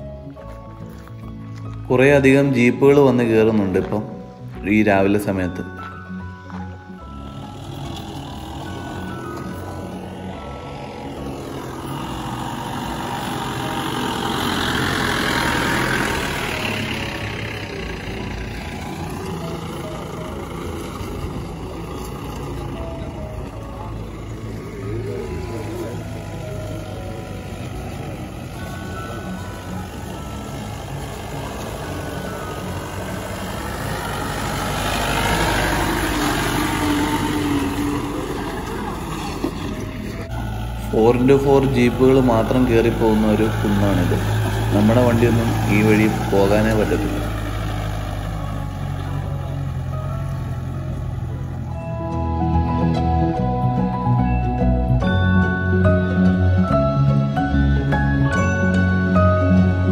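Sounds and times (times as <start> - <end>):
background music: 0.0 - 59.9
jeep engine running: 0.0 - 59.9.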